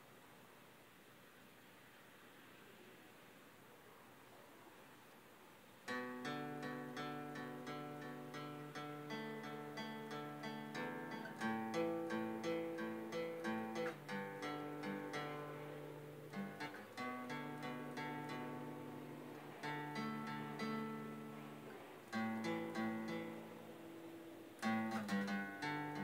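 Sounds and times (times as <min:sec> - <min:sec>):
acoustic guitar picking chords: 0:05.9 - 0:26.0.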